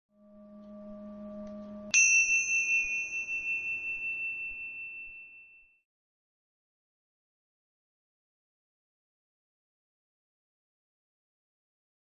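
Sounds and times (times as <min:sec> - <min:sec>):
soft low tone: 0:00.1 - 0:05.8
bright high chime: 0:00.2 - 0:05.9.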